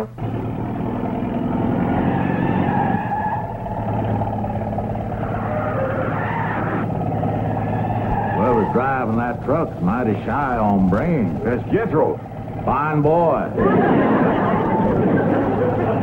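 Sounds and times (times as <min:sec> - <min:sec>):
truck engine running: 0:00.0 - 0:16.0
tyres skidding: 0:00.0 - 0:16.0.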